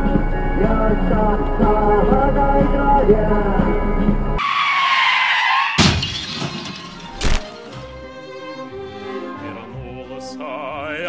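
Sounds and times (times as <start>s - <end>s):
tyre screech: 4.4s - 7.4s
glass smashing: 5.7s - 7.7s.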